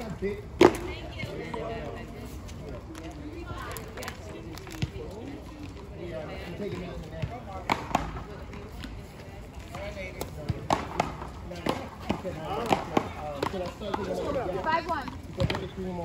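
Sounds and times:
faint voices talking: 0.0 - 16.0.

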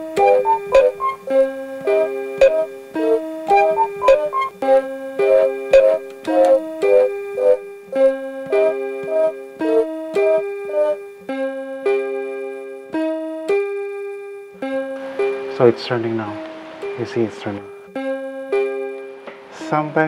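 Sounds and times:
keyboard melody: 0.0 - 15.7, 17.7 - 19.2.

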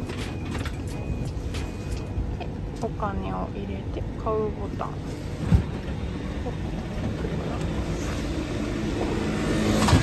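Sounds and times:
low rumble of street traffic: 0.0 - 10.0.

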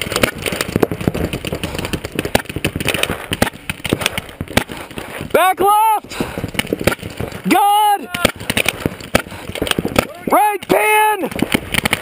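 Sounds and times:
paintball markers firing: 0.0 - 5.4, 6.1 - 12.0
person shouting: 5.4 - 6.1, 7.4 - 8.4, 10.0 - 11.3.

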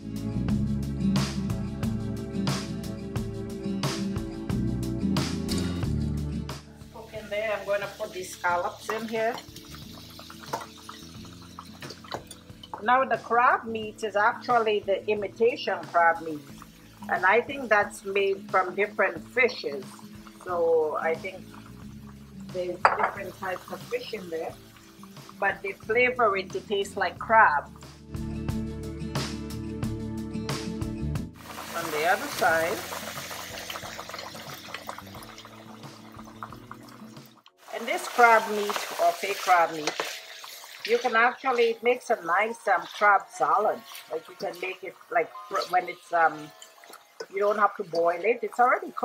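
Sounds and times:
food crackling in a skillet: 6.9 - 12.8, 14.3 - 27.0, 31.4 - 49.0
vegetables sizzling in a frying pan: 6.9 - 12.8, 13.6 - 27.6, 31.4 - 36.4, 37.6 - 49.0.

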